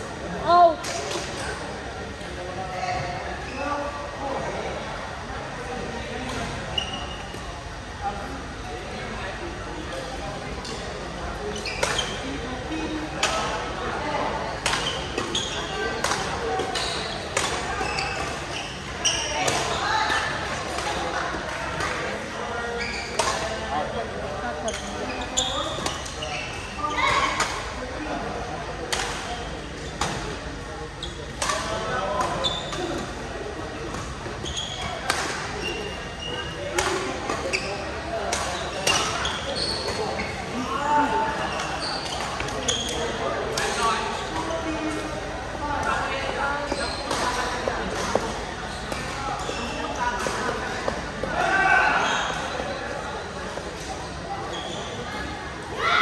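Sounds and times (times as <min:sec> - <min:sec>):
chatter of voices: 0:00.0 - 0:56.0
shoes squeaking on court floor: 0:06.4 - 0:07.5, 0:10.6 - 0:13.0, 0:14.8 - 0:19.8, 0:22.6 - 0:23.6, 0:24.6 - 0:27.4, 0:29.2 - 0:33.1, 0:33.7 - 0:45.2, 0:46.3 - 0:51.4, 0:53.8 - 0:55.3.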